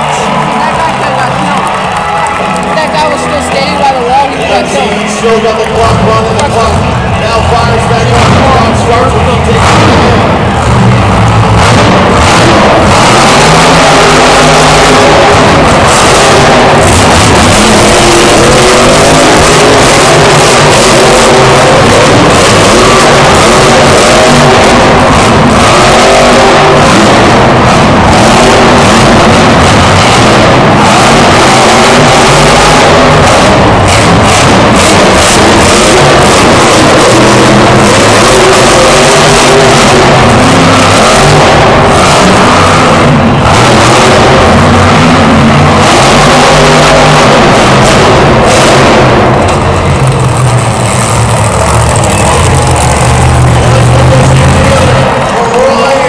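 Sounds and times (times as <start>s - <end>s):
truck engine revving: 0.0s - 56.0s.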